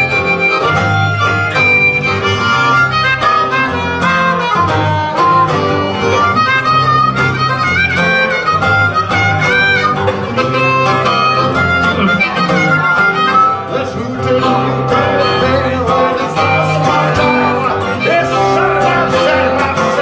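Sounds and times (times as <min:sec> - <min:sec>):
amplified harmonica: 0:00.0 - 0:20.0
strummed acoustic guitar: 0:00.0 - 0:20.0.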